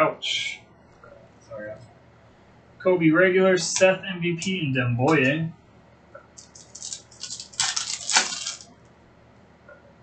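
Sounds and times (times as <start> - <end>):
foil wrapper crinkling and tearing: 6.4 - 8.7.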